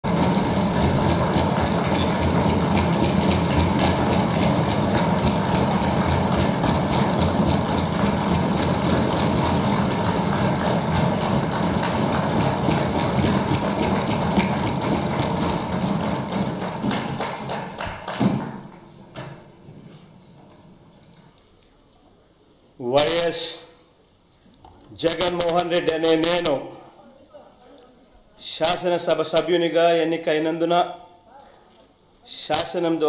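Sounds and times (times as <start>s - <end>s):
crowd applauding: 0.0s - 18.7s.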